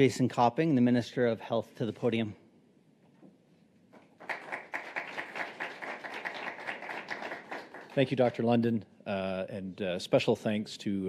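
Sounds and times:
audience applauding: 4.2s - 8.3s.

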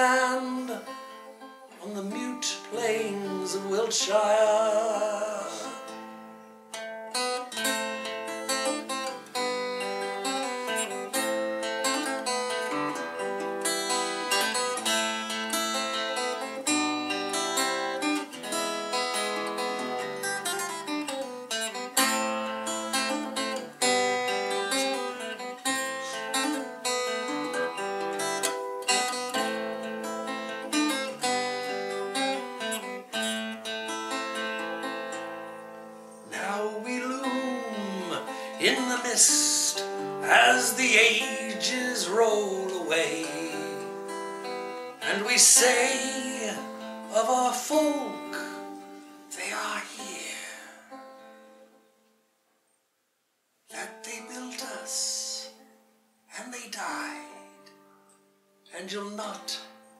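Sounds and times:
acoustic guitar playing: 0.0s - 52.5s, 53.6s - 59.9s.

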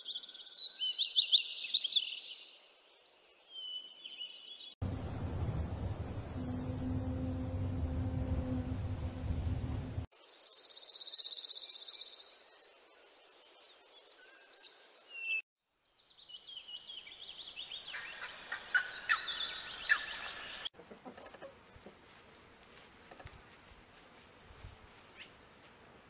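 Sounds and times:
faint outdoor background: 0.0s - 26.0s.

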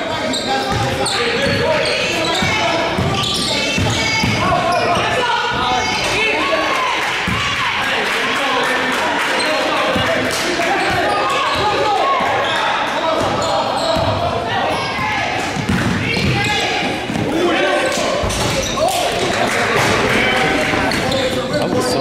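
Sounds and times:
people calling out in echoing gym: 0.0s - 22.0s.

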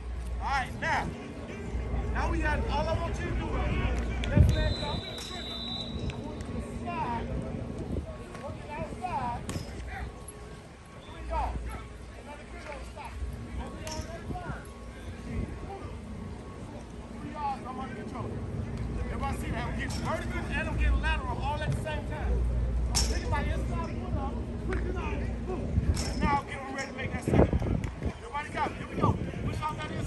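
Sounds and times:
voices calling and talking: 0.0s - 30.0s
steady low rumble: 5.7s - 30.0s.

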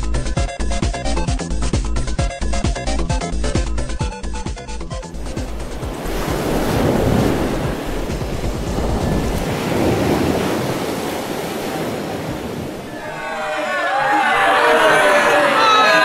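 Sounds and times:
ocean waves washing in: 5.1s - 13.3s.

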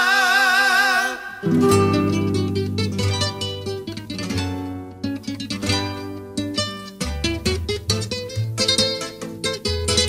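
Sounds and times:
acoustic guitars playing: 1.1s - 10.0s.

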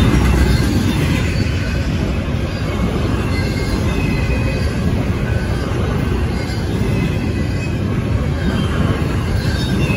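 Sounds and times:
freight train wheels rumbling: 0.0s - 9.9s
high wheel squeals: 0.1s - 9.9s.

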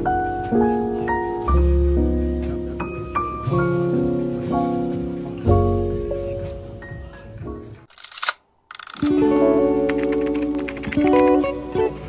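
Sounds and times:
camera shutter clicks: 7.9s - 9.1s
plucked acoustic guitar music: 9.0s - 12.0s.

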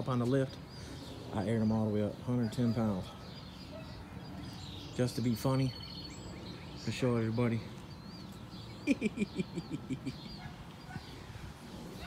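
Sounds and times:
man laughing: 8.7s - 10.5s.

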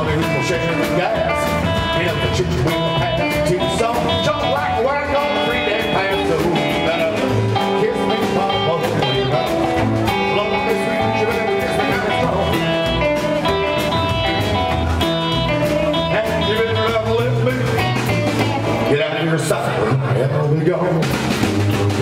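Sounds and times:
live rockabilly band playing: 0.0s - 22.0s.

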